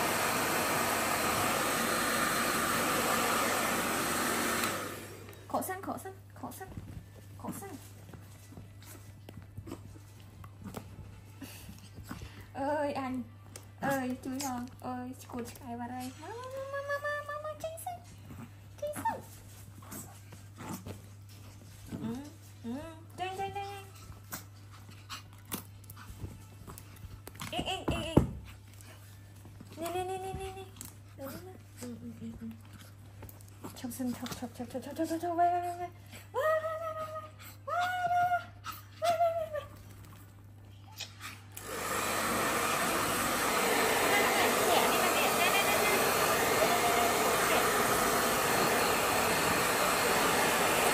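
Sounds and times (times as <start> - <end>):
rustling and scratching in towels: 6.3 - 12.6, 17.7 - 27.6.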